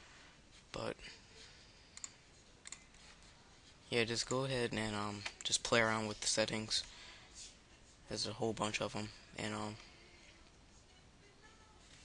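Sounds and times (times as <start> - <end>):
computer mouse clicks: 2.0 - 3.0.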